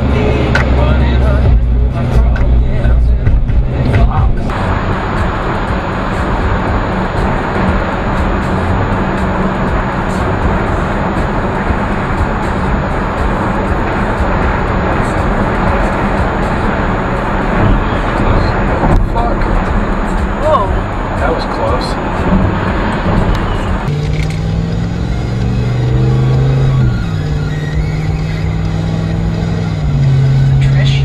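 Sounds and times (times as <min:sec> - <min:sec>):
road and engine noise in car: 0:00.0 - 0:31.0.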